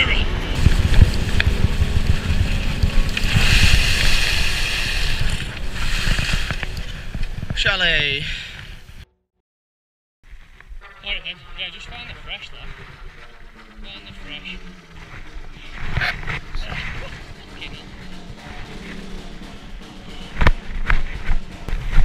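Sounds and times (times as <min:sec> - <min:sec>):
wind buffeting microphone: 0:00.0 - 0:07.8
skis scraping over snow: 0:00.6 - 0:08.8, 0:10.8 - 0:17.8.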